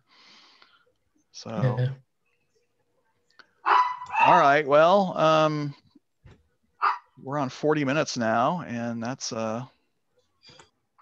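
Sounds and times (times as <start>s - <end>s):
dog bark: 3.6s - 4.4s, 6.8s - 7.1s.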